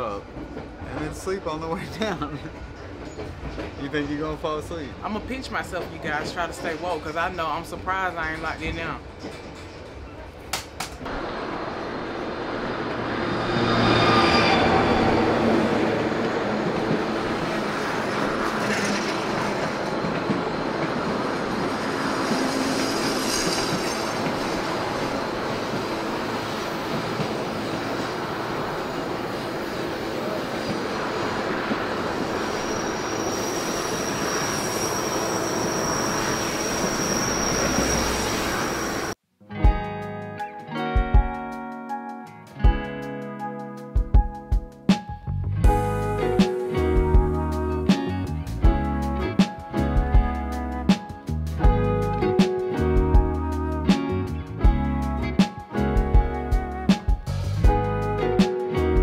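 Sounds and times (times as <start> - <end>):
train wheels rumbling on rail: 0.0 - 39.2
high-pitched wheel squeal: 13.2 - 15.9, 31.1 - 39.2.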